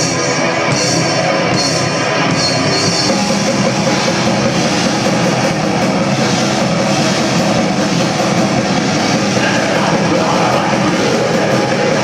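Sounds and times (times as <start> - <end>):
distorted electric guitars: 0.0 - 12.0
drum kit: 0.0 - 12.0.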